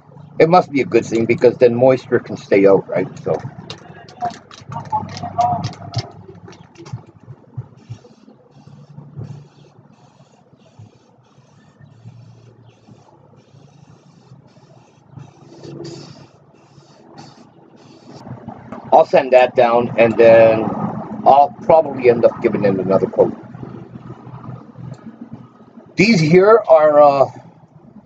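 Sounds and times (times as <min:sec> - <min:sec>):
spray can mixing ball rattling: 0:03.3 - 0:18.9
spray hissing bursts: 0:07.6 - 0:18.6.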